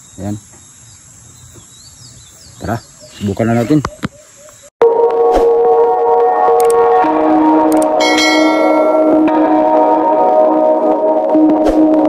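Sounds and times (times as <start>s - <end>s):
bell-like ringing tones: 8.0s - 9.3s
bright chime: 8.0s - 9.3s.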